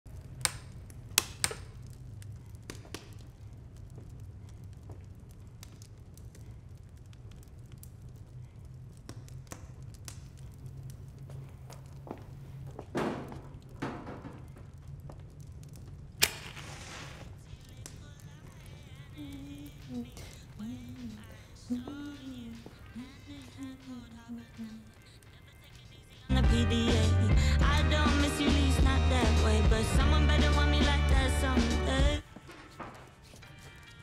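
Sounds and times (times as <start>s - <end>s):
match struck and hissing: 16.2s - 18.2s.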